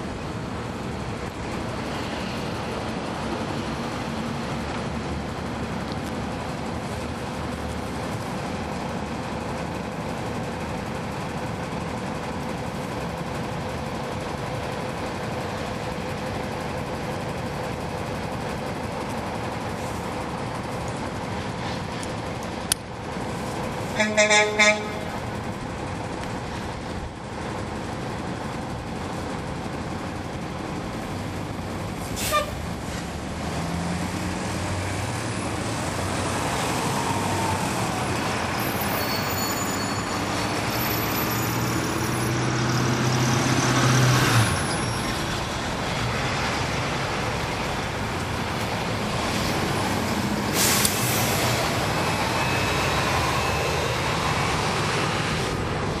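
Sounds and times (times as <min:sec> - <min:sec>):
bus engine pulling: 0:00.0 - 0:56.0
air brake hisses: 0:32.1 - 0:32.6, 0:50.4 - 0:51.6.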